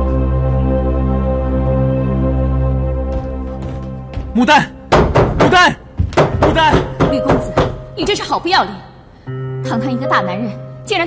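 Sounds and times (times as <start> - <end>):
background music: 0.0 - 11.0
fist knocking on wooden door: 4.9 - 7.9.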